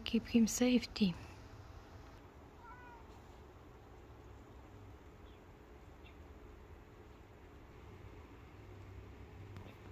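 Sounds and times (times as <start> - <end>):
cat meowing faintly: 2.5 - 3.4.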